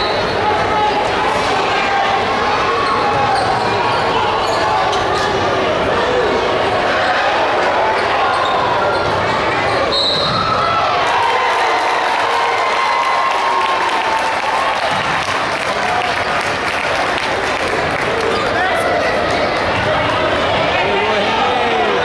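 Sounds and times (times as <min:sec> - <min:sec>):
crowd voices and shouts: 0:00.0 - 0:22.0.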